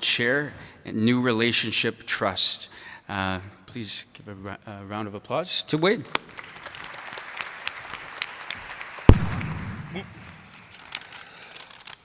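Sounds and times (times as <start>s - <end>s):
audience applause: 6.3s - 11.4s.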